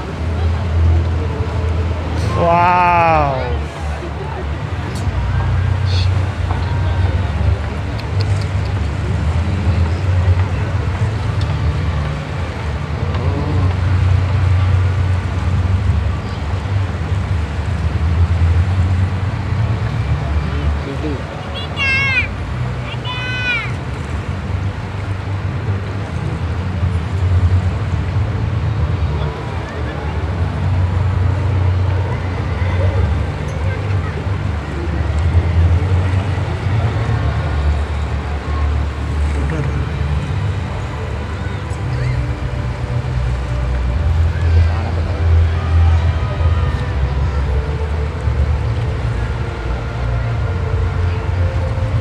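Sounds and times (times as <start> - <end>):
low outdoor rumble: 0.0 - 52.0.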